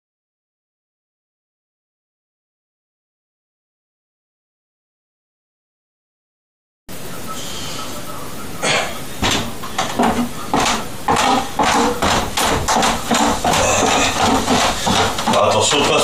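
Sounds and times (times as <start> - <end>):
footsteps on wooden stairs: 9.2 - 16.0.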